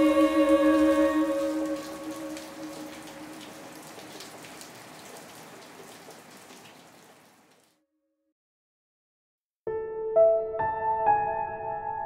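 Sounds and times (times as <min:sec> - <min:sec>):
held music chord: 0:00.0 - 0:03.3
rain on wet pavement: 0:00.0 - 0:07.7.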